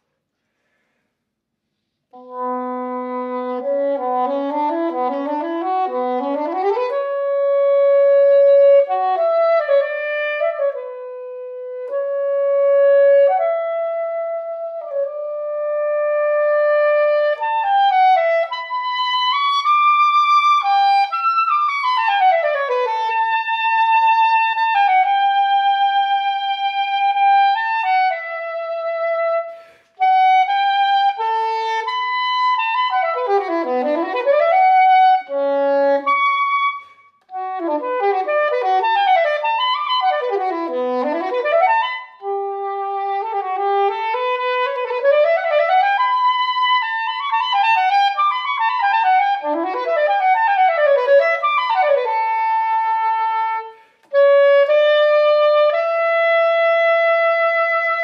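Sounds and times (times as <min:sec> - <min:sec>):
soprano saxophone playing: 0:02.1 - 0:58.0.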